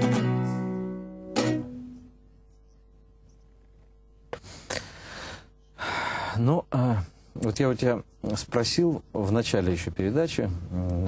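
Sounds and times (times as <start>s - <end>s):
man breathing: 4.3s - 6.4s.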